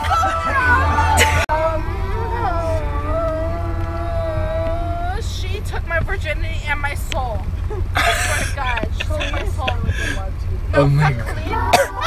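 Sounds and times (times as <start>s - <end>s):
person singing: 0.0s - 5.2s
car rumble: 0.0s - 12.0s.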